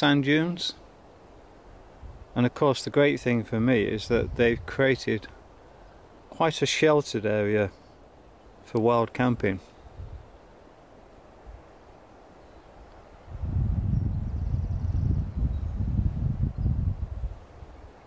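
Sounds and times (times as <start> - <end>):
wind buffeting microphone: 2.0 - 2.4, 3.8 - 5.3, 9.8 - 10.4, 13.2 - 18.0.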